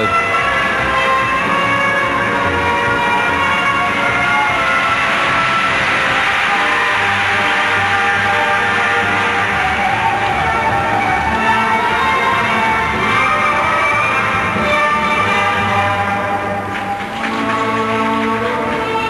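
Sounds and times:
instrumental music with held notes: 0.0s - 19.0s.

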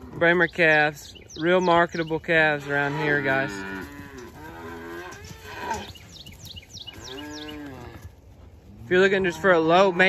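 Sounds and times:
calves bawling: 0.0s - 10.0s.

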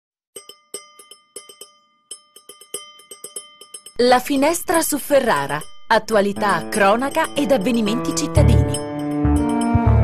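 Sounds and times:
small metal bell ringing: 0.4s - 10.0s.

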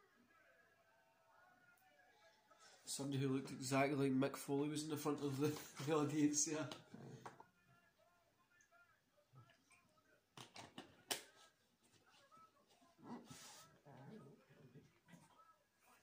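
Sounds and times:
faint distant speech: 0.0s - 16.0s.

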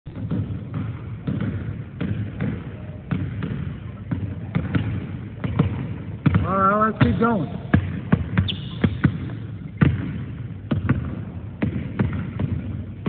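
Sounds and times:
basketball bouncing on hardwood floor: 0.1s - 13.0s.

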